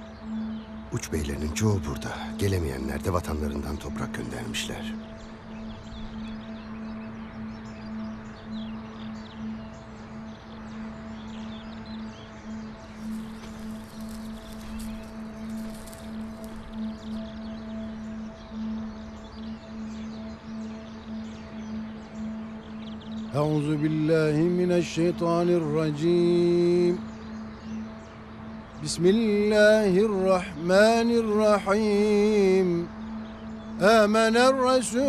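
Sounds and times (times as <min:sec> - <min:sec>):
sustained drone music: 0:00.0 - 0:35.0
faint gritty rustle: 0:12.9 - 0:17.2.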